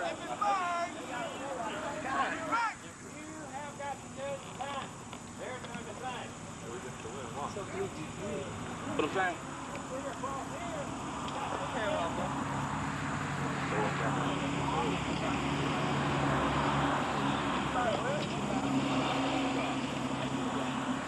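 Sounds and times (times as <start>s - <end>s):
crowd chatter: 0.0s - 21.0s
engine drone: 0.0s - 21.0s.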